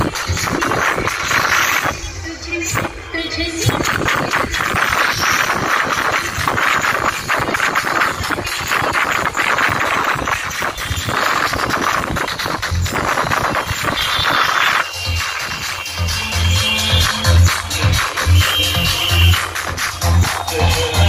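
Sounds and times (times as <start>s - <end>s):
loud dj music: 0.0s - 21.0s.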